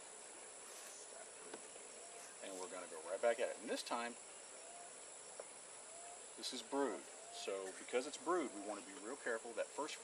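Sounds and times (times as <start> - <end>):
insects chirring: 0.0 - 10.0.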